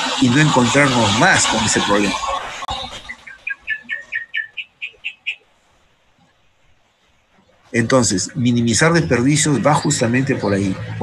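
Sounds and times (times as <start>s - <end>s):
bird chirping: 2.1s - 5.6s.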